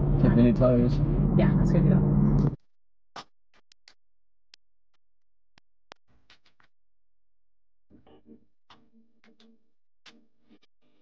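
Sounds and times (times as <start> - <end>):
sparse electronic music clicks: 7.9 - 11.0.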